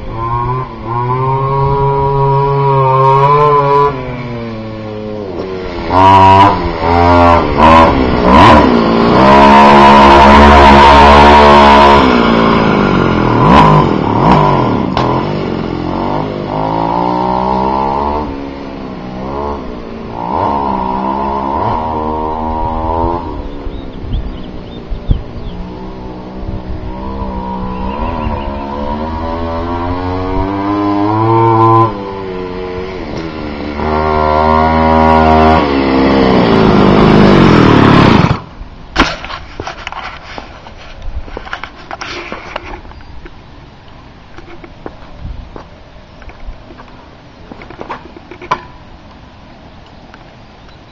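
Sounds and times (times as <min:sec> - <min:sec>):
scooter engine revving: 0:00.0 - 0:38.6.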